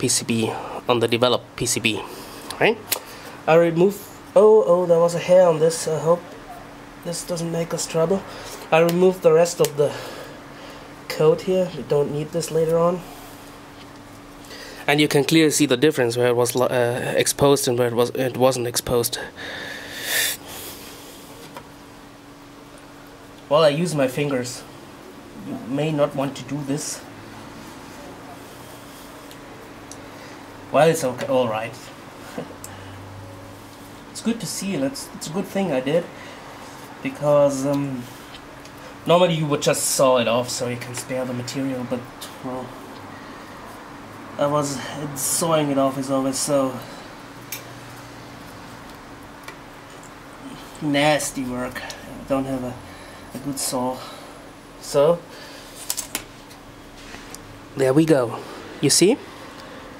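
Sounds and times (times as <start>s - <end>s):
faint steady hum: 0.0s - 59.9s
sharp exhale through nose: 19.4s - 21.4s.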